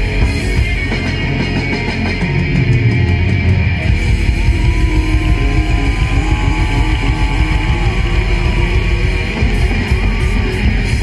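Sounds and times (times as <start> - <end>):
loud rock music with guitar: 0.0 - 11.0.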